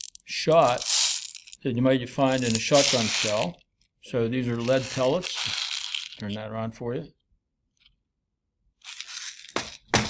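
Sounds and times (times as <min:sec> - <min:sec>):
lead pellets rattling in plastic jar: 0:00.0 - 0:01.6, 0:02.2 - 0:03.6, 0:04.4 - 0:06.4, 0:08.8 - 0:09.9.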